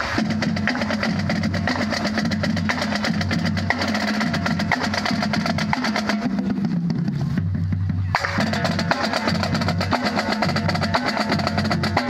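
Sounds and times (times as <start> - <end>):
drumline playing a drum cadence: 0.0 - 12.0.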